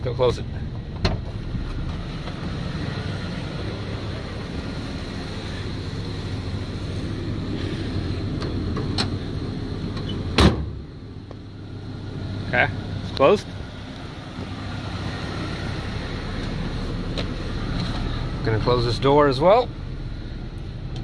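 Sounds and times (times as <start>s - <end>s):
low rumble: 0.0s - 21.0s
tailgate slamming shut: 10.0s - 10.8s.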